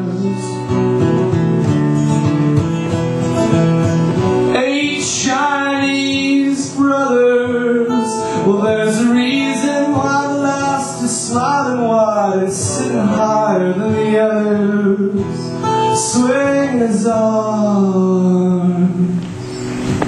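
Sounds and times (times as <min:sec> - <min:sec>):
man singing: 0:00.0 - 0:01.2, 0:04.4 - 0:19.2
acoustic guitar strumming: 0:00.0 - 0:20.0.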